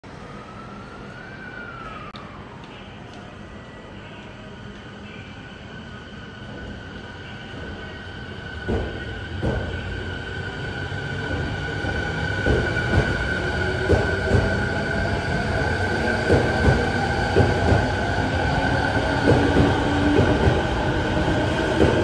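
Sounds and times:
train rumble: 6.4s - 22.0s.

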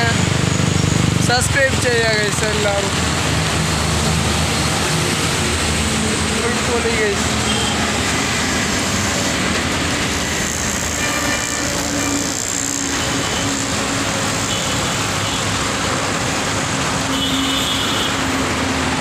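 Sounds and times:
traffic noise: 0.0s - 19.0s.

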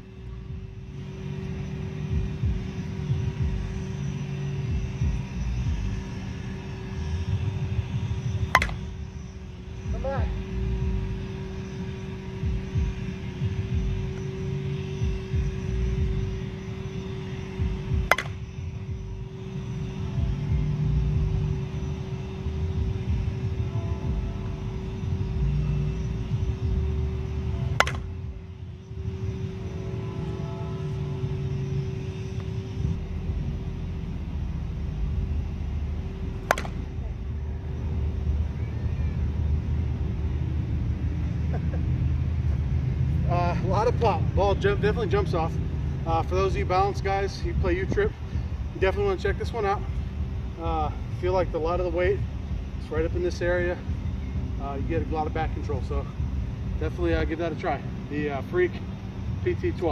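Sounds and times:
low rumble: 0.0s - 58.3s
constant low hum: 0.0s - 59.9s
bat hitting softball: 8.5s - 8.9s, 18.0s - 18.4s, 27.7s - 28.2s, 36.4s - 37.0s.

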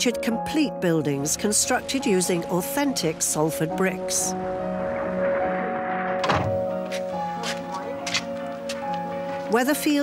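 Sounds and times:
background music with held notes: 0.0s - 10.0s.

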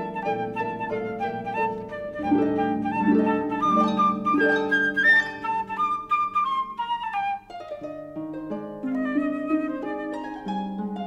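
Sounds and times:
flute melody: 0.0s - 11.0s.

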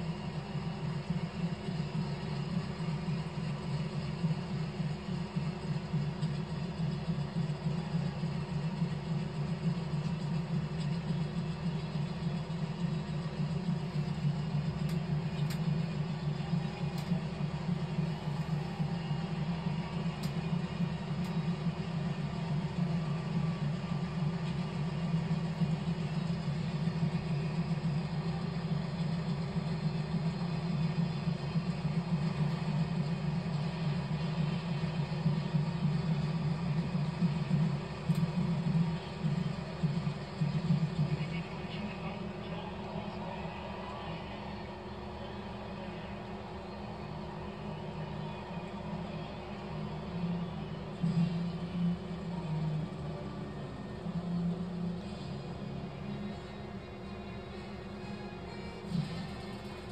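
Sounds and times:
muffled marching band on tv: 0.0s - 59.9s
muffled stadium crowd: 0.0s - 59.9s.

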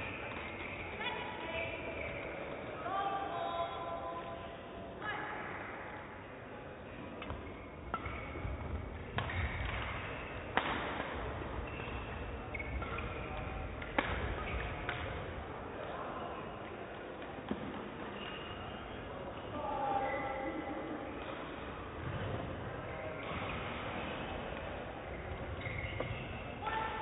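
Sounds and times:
distant voices echoing in hall: 0.0s - 27.0s.

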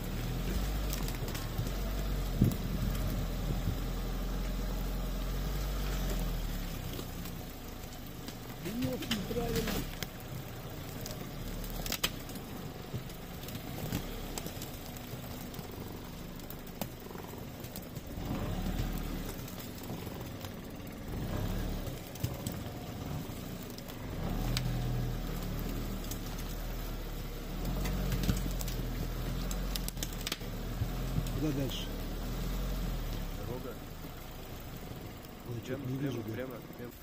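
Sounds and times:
vehicle knocks and rattles: 0.0s - 3.9s, 6.2s - 26.9s
vehicle engine low drone: 0.0s - 37.0s.

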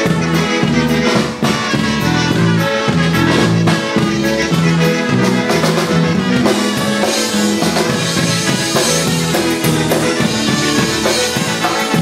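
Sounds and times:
electric bass: 0.0s - 12.0s
polka band playing: 0.0s - 12.0s.

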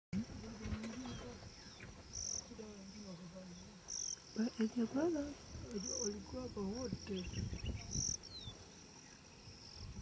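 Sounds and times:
insects trilling: 0.2s - 10.0s.

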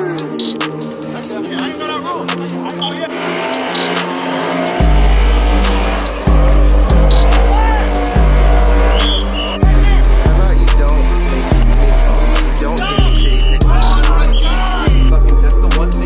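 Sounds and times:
hip-hop music with vocals: 0.0s - 16.0s
deep bass notes: 2.4s - 16.0s.

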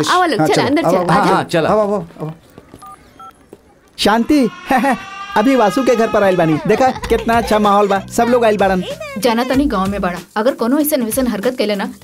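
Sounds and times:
touch-tone keypad beeps: 2.8s - 3.4s.

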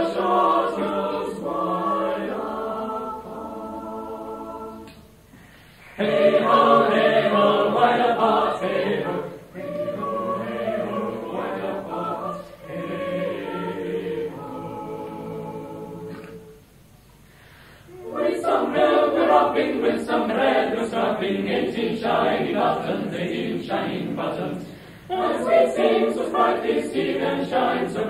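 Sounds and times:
choir singing in parts: 0.0s - 16.8s, 17.9s - 28.0s.

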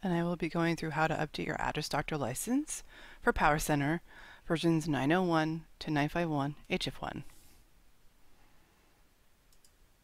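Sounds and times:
faint clicks: 9.5s - 9.8s.

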